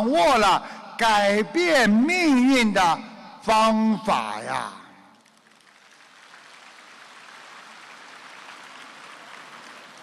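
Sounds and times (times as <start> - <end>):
audience applause: 5.2 - 10.0.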